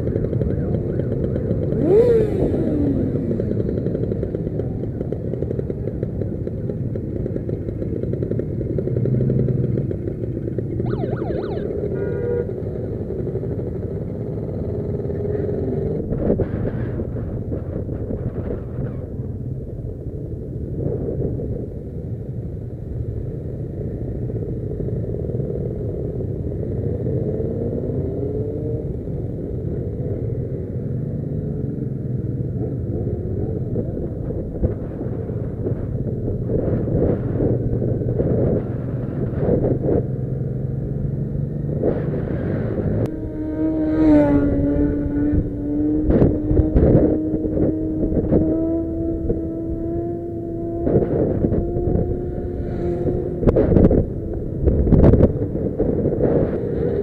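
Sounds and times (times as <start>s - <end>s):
motorcycle engine accelerating: 0.0s - 57.0s
wind noise on microphone: 32.8s - 57.0s.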